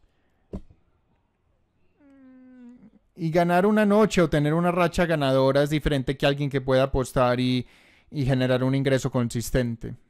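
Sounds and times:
faint drawn-out vocal sound: 1.8 - 3.2.

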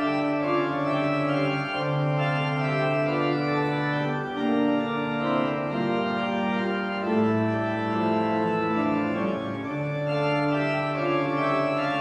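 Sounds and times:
church organ playing chords: 0.0 - 12.0.

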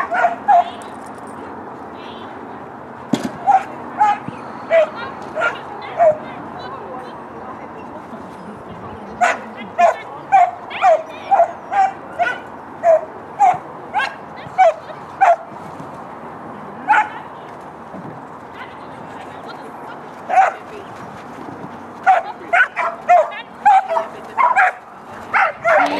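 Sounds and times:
dog barking: 0.0 - 0.8, 3.4 - 6.2, 9.2 - 15.5, 16.9 - 17.2, 20.3 - 20.6, 22.0 - 25.9.

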